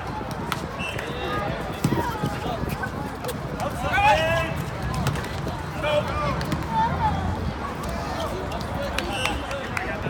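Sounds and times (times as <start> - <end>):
people calling out and chattering: 0.0 - 10.0.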